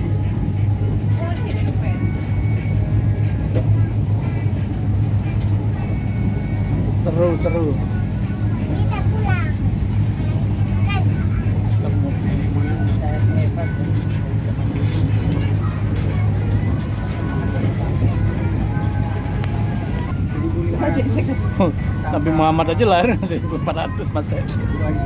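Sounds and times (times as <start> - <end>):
faint passenger voices: 0.0 - 25.0
low engine drone: 0.0 - 25.0.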